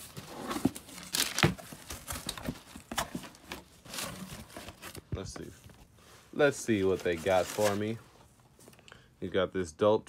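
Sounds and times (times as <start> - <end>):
packing paper rustling and crinkling: 0.0 - 8.7.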